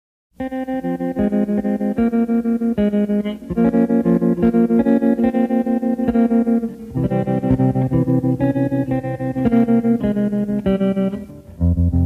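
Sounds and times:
electric guitar chords with tremolo: 0:00.4 - 0:12.0.

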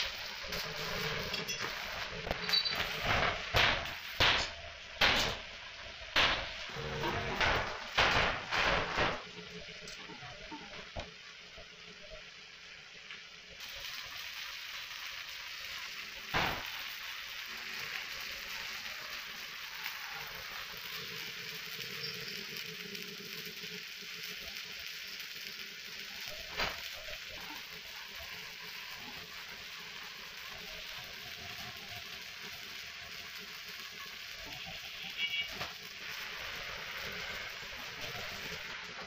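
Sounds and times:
steady hiss: 0:00.0 - 0:39.0.

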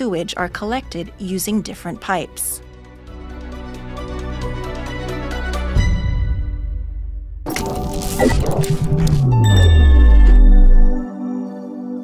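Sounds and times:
transition music: 0:07.5 - 0:11.1
dropping low tone: 0:08.2 - 0:11.1.

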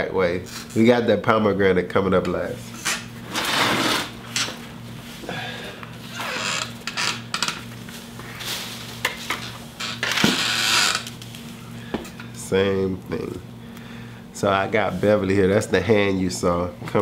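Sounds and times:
low steady hum: 0:00.0 - 0:17.0
leafy branch rustling: 0:07.6 - 0:09.8.

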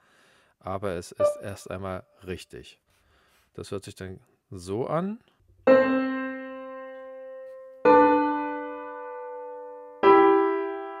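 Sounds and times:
piano chords ringing: 0:01.1 - 0:01.9, 0:05.6 - 0:11.0.

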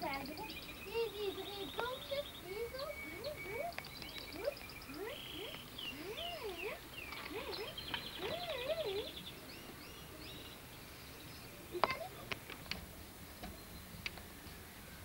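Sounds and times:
lower wavering bird calls: 0:00.0 - 0:12.3
birds chirping and trilling: 0:00.0 - 0:15.0.

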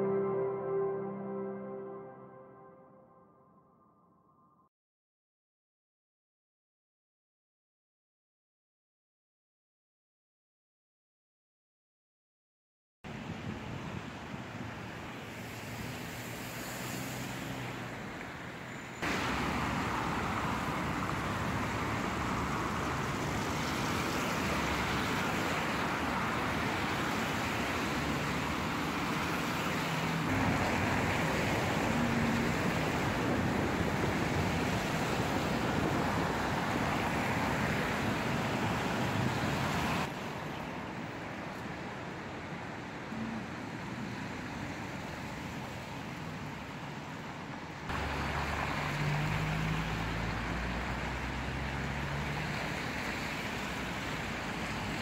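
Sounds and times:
passing cars: 0:13.1 - 0:55.0.

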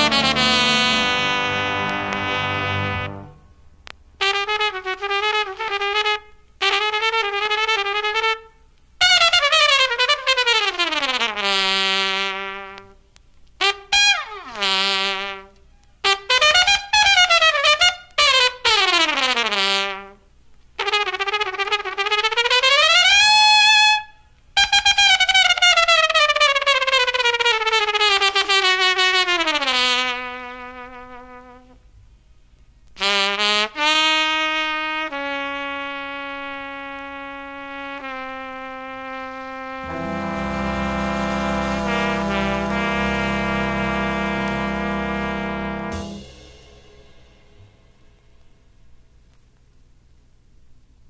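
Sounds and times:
jazz band playing: 0:00.0 - 0:03.8, 0:39.7 - 0:48.4
trumpet playing wavering phrases: 0:00.0 - 0:12.8, 0:13.6 - 0:20.2, 0:20.8 - 0:31.8, 0:33.0 - 0:48.4
vinyl record rumble and hiss: 0:00.0 - 0:51.0.

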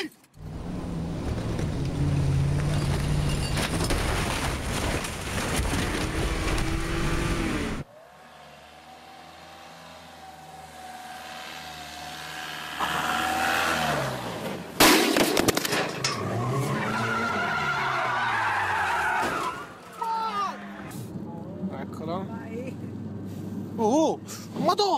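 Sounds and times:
car engine revving: 0:00.4 - 0:03.7, 0:05.7 - 0:14.6
car crash: 0:01.0 - 0:06.9, 0:14.4 - 0:20.0.

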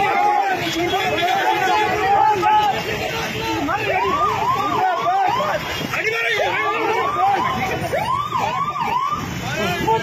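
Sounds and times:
noisy crowd: 0:00.0 - 0:10.0
vehicle siren wailing: 0:00.0 - 0:10.0.

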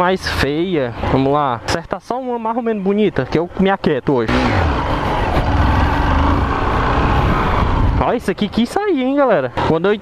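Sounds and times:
motorcycle engine running: 0:04.3 - 0:08.4.

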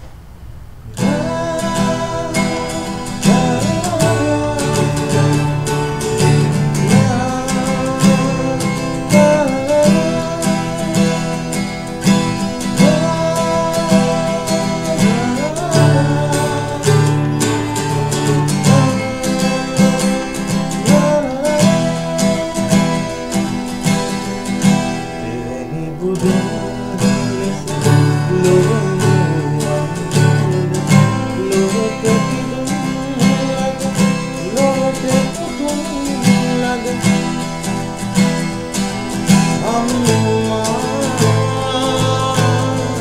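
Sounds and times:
acoustic guitar strumming: 0:00.0 - 0:43.0
man singing: 0:00.9 - 0:43.0.

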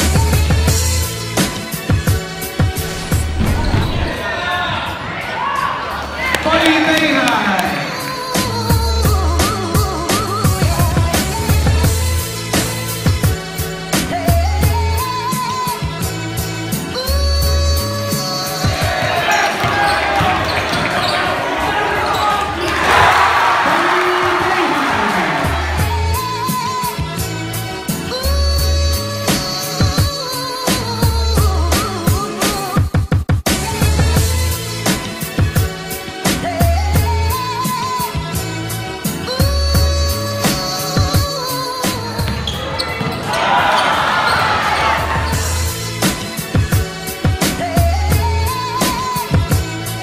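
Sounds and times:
crowd noise: 0:02.8 - 0:08.1, 0:18.5 - 0:26.3, 0:41.9 - 0:45.8.

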